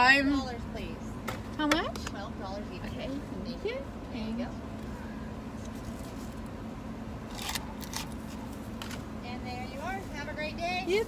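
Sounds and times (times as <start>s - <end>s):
straw paper wrapper tearing: 7.3s - 9.0s.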